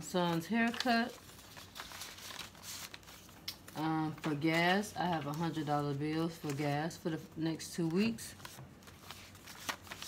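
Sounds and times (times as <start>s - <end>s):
paper envelope and banknote rustling: 0.0s - 10.0s.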